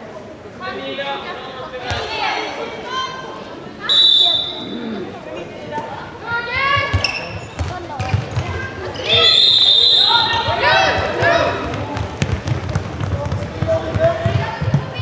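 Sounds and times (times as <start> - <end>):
voices calling out: 3.8 - 12.0
referee's whistle blast: 3.9 - 4.7, 9.2 - 10.5
ball bouncing on court floor: 6.8 - 9.2, 11.0 - 15.0.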